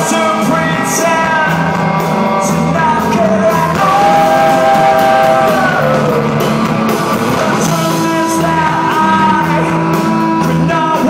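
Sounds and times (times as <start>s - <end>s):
lead vocal singing: 0.0s - 11.0s
rock band playing live: 0.0s - 11.0s.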